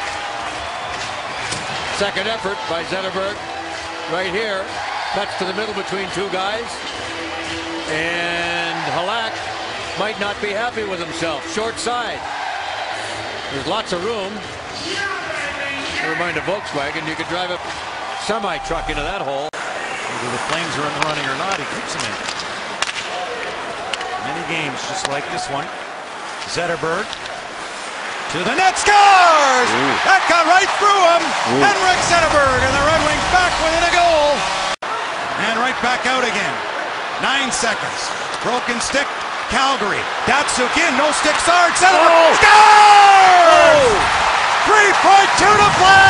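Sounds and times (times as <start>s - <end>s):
arena crowd noise: 0.0s - 46.0s
hockey sticks cracking on puck: 20.5s - 23.2s.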